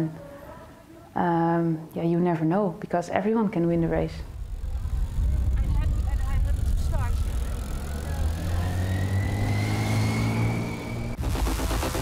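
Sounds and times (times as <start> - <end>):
motor vehicle engine rumbling: 3.6 - 11.2
voices of people on street: 4.0 - 9.6.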